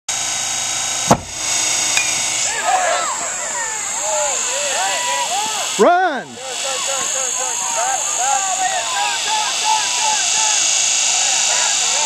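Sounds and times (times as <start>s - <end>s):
high-pitched background hiss: 0.2s - 12.0s
bat cracking on ball: 1.0s - 3.4s
spectators yelling and cheering: 2.0s - 12.0s
person shouting: 2.5s - 12.0s.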